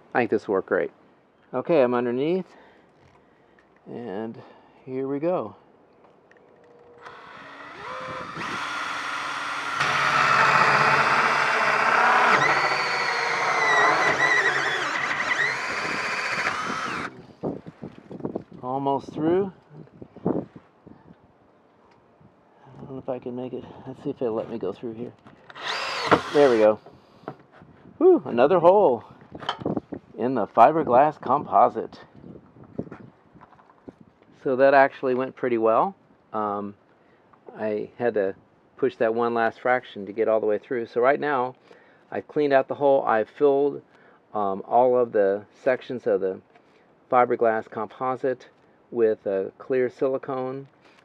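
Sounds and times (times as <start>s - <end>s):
cordless drill whining: 7.0s - 17.2s, 25.4s - 26.7s.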